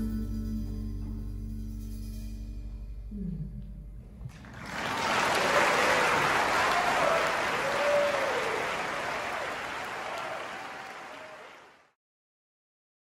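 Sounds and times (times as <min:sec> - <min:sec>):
audience applauding: 0:04.3 - 0:12.0
crowd cheering: 0:04.3 - 0:12.0.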